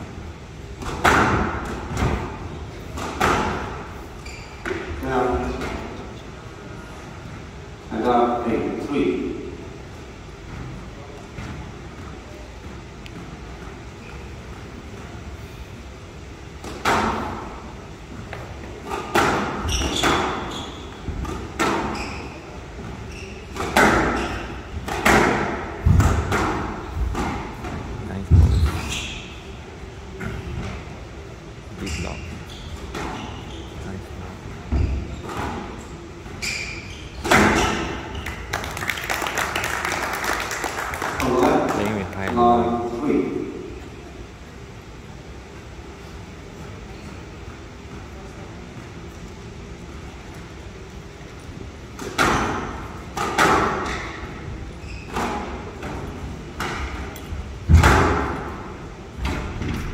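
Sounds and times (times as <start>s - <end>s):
squash ball hitting rackets and walls: 0.7s - 5.9s, 16.5s - 17.6s, 18.2s - 29.3s, 34.5s - 38.6s, 51.9s - 59.9s.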